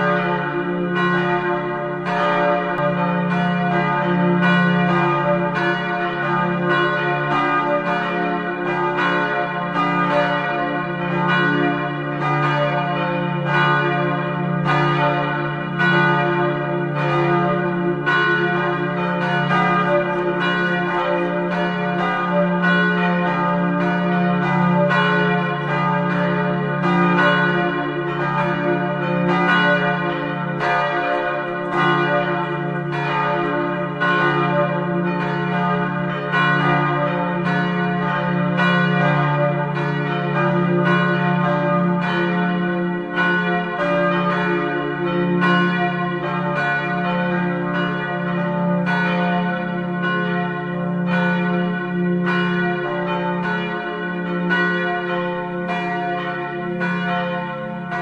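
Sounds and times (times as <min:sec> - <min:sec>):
church bells ringing: 0:00.0 - 0:58.0.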